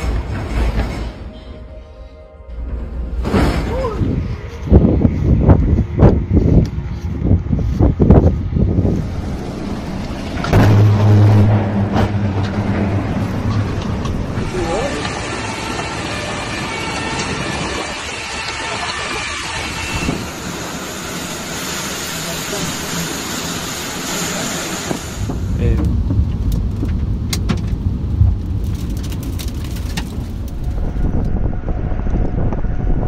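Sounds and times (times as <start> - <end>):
low hum: 0.0 - 33.0
storm wind: 2.6 - 33.0
loud bursts of noise: 9.0 - 26.3.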